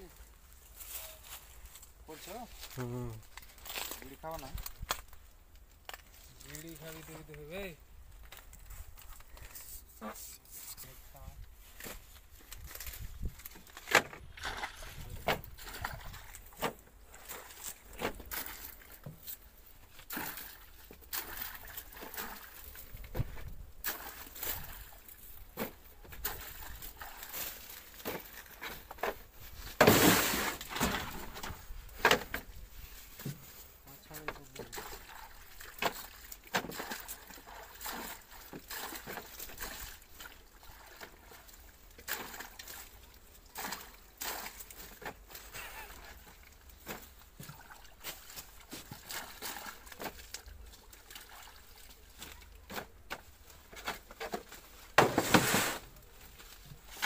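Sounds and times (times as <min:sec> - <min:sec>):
bananas splashing in water: 0:12.4 - 0:19.2, 0:20.0 - 0:29.0, 0:34.4 - 0:57.0.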